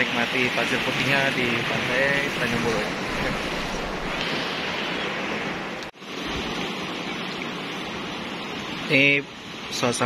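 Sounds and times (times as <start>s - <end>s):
waves breaking over rocks: 0.0s - 10.0s.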